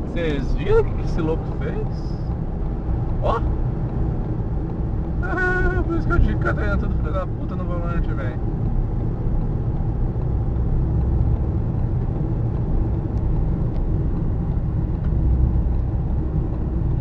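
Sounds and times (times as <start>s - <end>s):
car road and engine drone: 0.0s - 17.0s.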